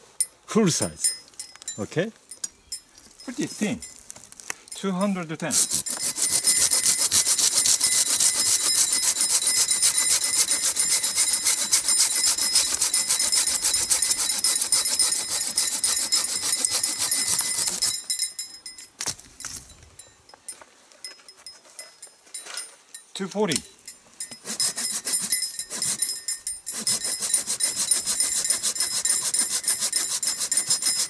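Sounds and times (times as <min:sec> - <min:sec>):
saw rasping through wood: 0:05.4 - 0:18.1, 0:24.3 - 0:31.0.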